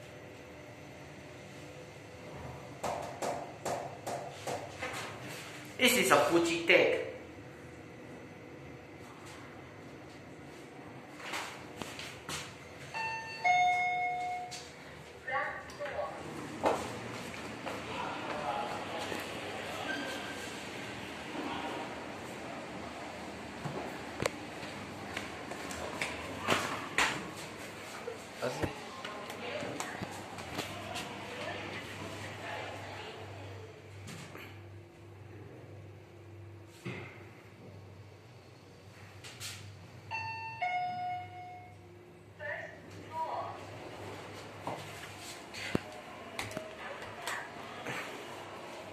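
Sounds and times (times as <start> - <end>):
elevator car low hum: 0.0 - 4.0, 7.0 - 48.9
two-tone elevator chime: 12.9 - 14.7, 40.1 - 41.8.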